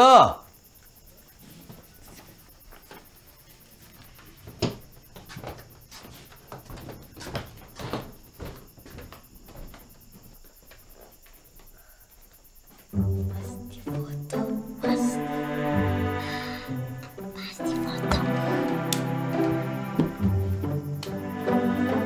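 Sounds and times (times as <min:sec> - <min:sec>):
wooden knocks and clatter: 0:04.2 - 0:11.0, 0:18.1 - 0:20.3.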